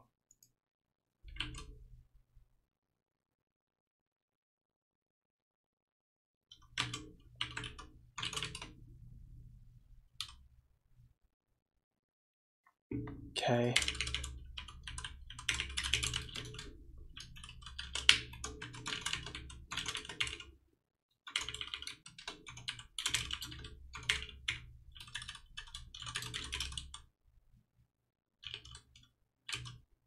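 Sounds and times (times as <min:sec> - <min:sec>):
computer keyboard typing: 0:01.3 - 0:01.8, 0:06.5 - 0:08.8, 0:13.8 - 0:20.5, 0:21.3 - 0:27.0, 0:28.4 - 0:29.8.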